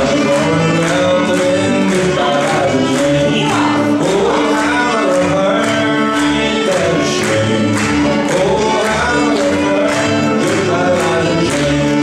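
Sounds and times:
acoustic guitar: 0.0 - 12.0
fiddle: 0.0 - 12.0
upright double bass: 0.0 - 12.0.

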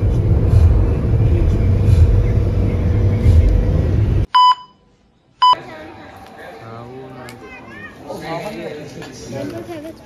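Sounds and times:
chatter of voices: 5.6 - 10.0.

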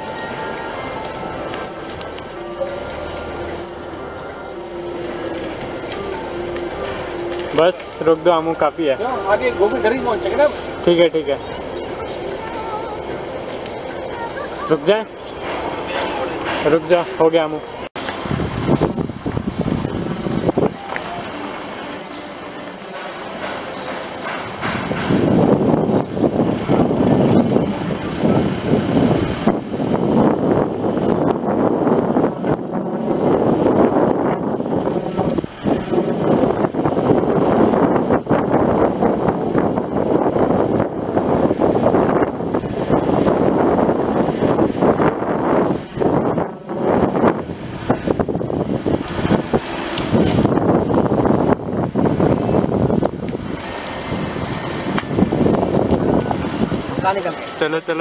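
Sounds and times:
wind on microphone: 0.0 - 21.4, 23.8 - 57.6
car engine: 0.0 - 58.0
road noise inside car: 0.0 - 58.0.

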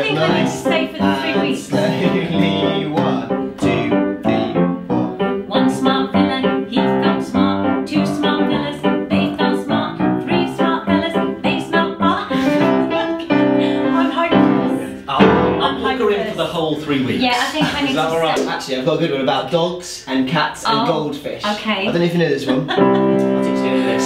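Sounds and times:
piano playing brisk accompaniment: 0.0 - 16.5, 22.5 - 24.0.

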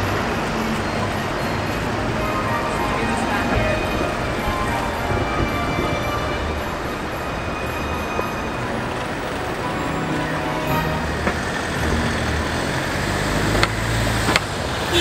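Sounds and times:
car passing by: 0.0 - 15.0
traffic rumble: 0.0 - 15.0.

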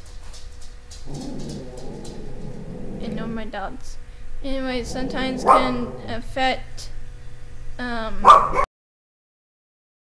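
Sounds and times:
dogs vocalizing: 1.1 - 3.3, 4.7 - 6.2.

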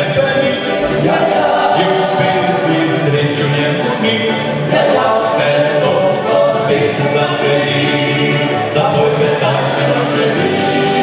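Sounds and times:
male vocal quartet singing: 0.0 - 11.0.

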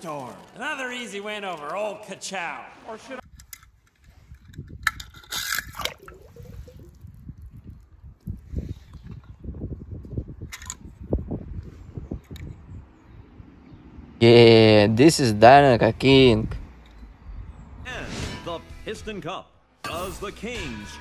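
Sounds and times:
wind buffeting microphone: 3.2 - 14.2, 15.9 - 17.9.

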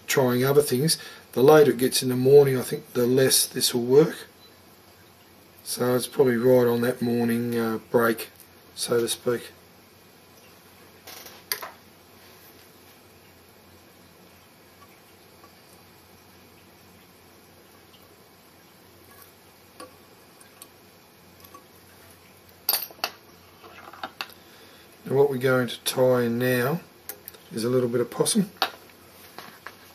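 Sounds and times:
room hiss: 0.0 - 29.9.

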